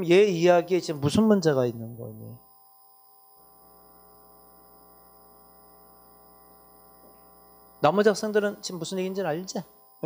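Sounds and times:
man talking: 0:00.0 - 0:02.4, 0:07.8 - 0:09.7
faint electrical hum: 0:00.0 - 0:10.0.

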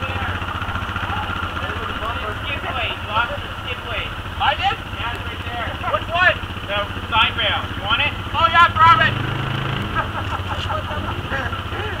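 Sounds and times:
atv engine idling: 0:00.0 - 0:12.0.

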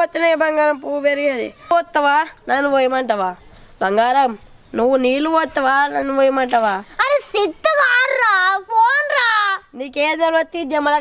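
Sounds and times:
cricket trilling: 0:00.0 - 0:11.0.

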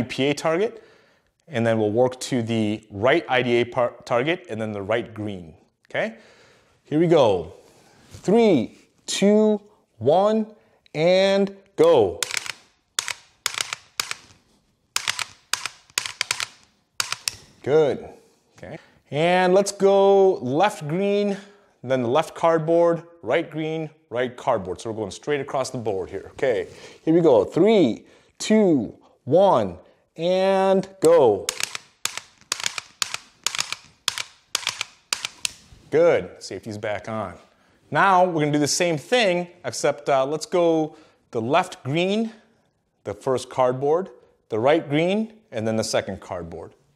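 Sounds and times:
dry-fire trigger clicks: 0:12.2 - 0:14.3, 0:15.0 - 0:17.5, 0:31.5 - 0:35.6.

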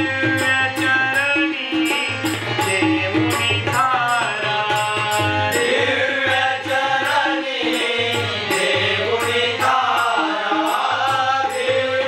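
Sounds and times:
harmonium: 0:00.0 - 0:12.0
tabla: 0:00.0 - 0:12.0.

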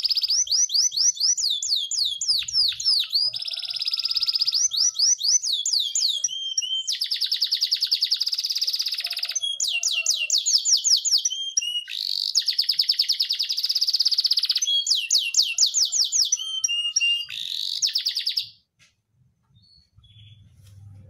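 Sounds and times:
canary singing trills: 0:00.0 - 0:18.6, 0:19.6 - 0:20.6.

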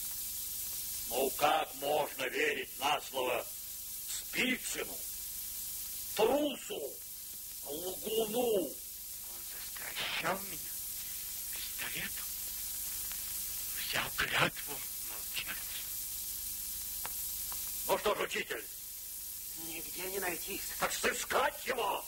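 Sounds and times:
film soundtrack hiss: 0:00.0 - 0:22.0.

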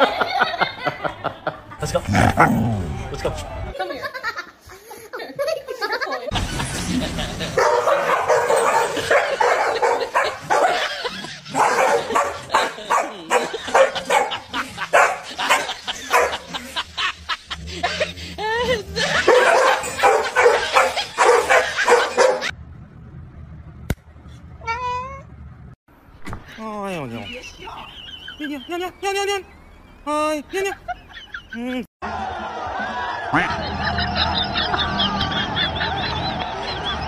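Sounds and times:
dogs barking and yipping: 0:07.4 - 0:16.7, 0:18.6 - 0:22.6.

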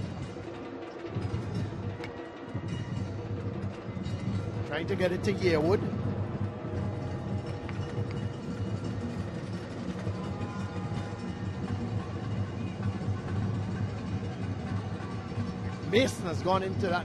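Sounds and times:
low background music: 0:00.0 - 0:17.0
stadium crowd ambience: 0:00.0 - 0:17.0.

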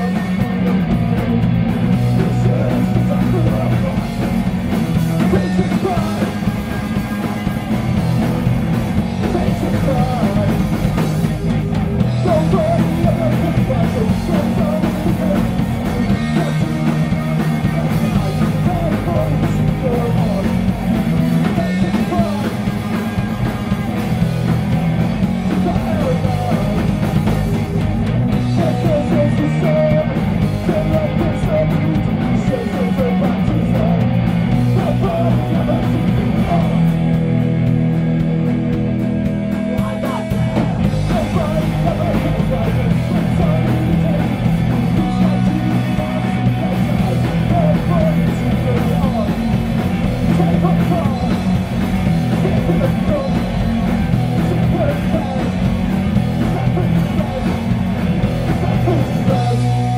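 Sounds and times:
bass guitar: 0:00.0 - 0:59.9
distorted electric guitar: 0:00.0 - 0:59.9
drums: 0:00.0 - 0:59.9
man singing into microphone: 0:02.2 - 0:04.3, 0:05.2 - 0:06.4, 0:09.2 - 0:10.8, 0:12.2 - 0:20.6, 0:25.5 - 0:26.9, 0:28.5 - 0:34.0, 0:34.7 - 0:37.0, 0:41.0 - 0:49.6, 0:50.3 - 0:51.5, 0:52.4 - 0:55.6.

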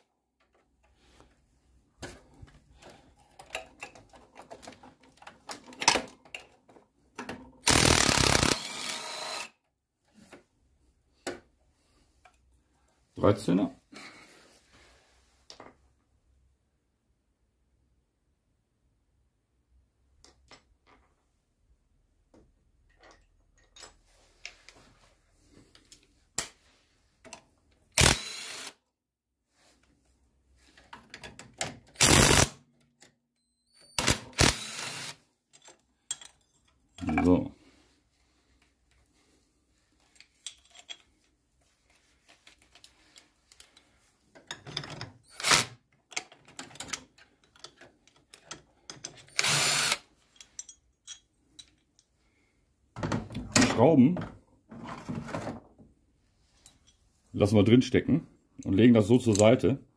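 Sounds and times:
power tool bursts: 0:07.7 - 0:09.5, 0:28.0 - 0:28.8, 0:32.0 - 0:32.5, 0:34.0 - 0:35.2, 0:45.3 - 0:45.8, 0:49.4 - 0:50.0.

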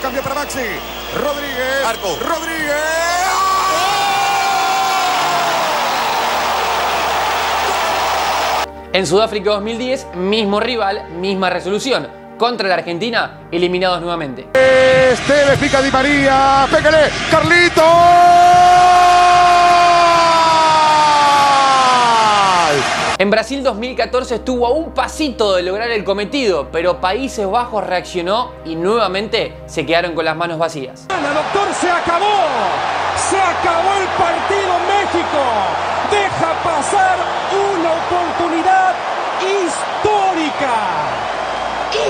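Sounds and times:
stadium crowd cheering: 0:00.0 - 0:08.7, 0:14.6 - 0:23.2, 0:31.1 - 0:42.0
commentator shouting excitedly: 0:02.4 - 0:05.8, 0:31.1 - 0:41.1.

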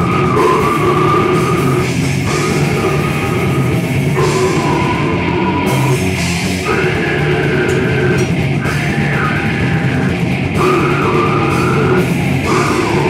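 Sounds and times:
death metal band playing: 0:00.0 - 0:13.0.

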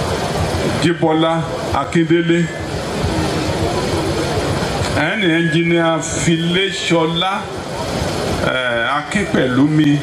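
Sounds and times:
background noise: 0:00.0 - 0:10.0
man speaking over loudspeakers: 0:00.8 - 0:02.7, 0:04.9 - 0:07.6, 0:08.4 - 0:10.0.

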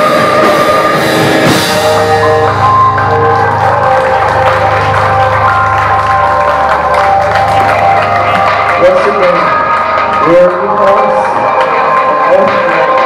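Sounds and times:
rock band final chord: 0:00.0 - 0:12.8
crowd applause and cheering: 0:00.0 - 0:13.0
low bass note: 0:01.3 - 0:11.1.

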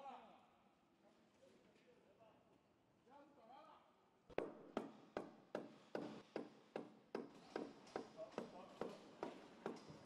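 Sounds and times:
sharp evenly spaced knocks: 0:04.3 - 0:10.0.

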